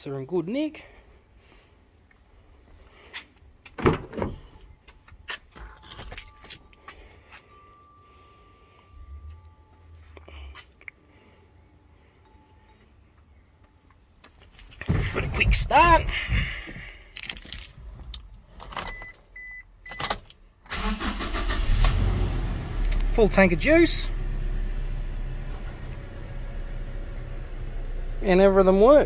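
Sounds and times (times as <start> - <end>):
faint steady tone: 4.5 - 14.1
keys jangling: 5.6 - 7.1, 17.1 - 18.8.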